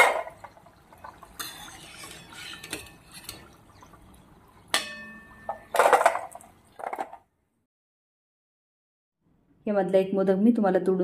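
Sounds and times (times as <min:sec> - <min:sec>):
food frying in ghee: 0:00.3 - 0:05.7.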